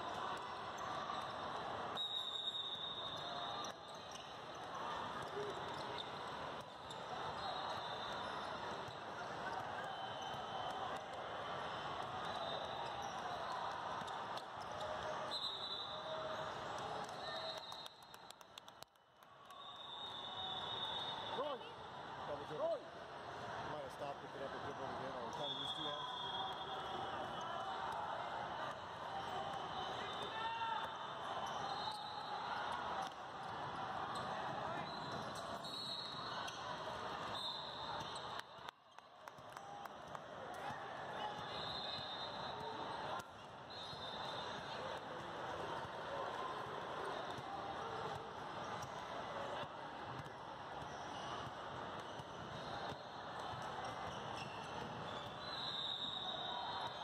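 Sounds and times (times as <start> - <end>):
hubbub of many voices: 0.0 - 57.0.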